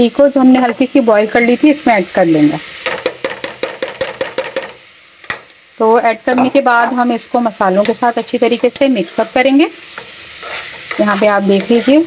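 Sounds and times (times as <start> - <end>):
steel spoon tapping a pan: 2.8 - 5.5, 7.8 - 9.0, 9.9 - 12.0.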